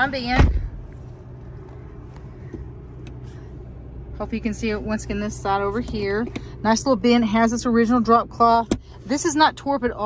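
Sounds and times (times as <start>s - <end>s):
truck engine idling: 0.0s - 10.0s.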